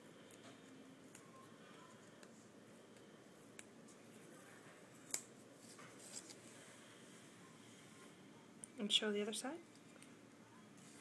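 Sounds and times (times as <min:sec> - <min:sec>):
wristband handling rustle: 0:05.6 - 0:06.6.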